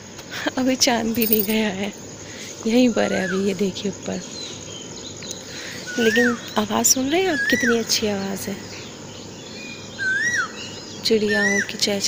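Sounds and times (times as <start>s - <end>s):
birds chirping: 1.1s - 1.7s.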